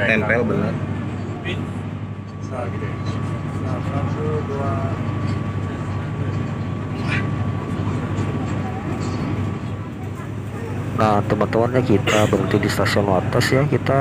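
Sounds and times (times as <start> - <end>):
train rumbling inside carriage: 0.0 - 12.6
faint voices: 0.0 - 14.0.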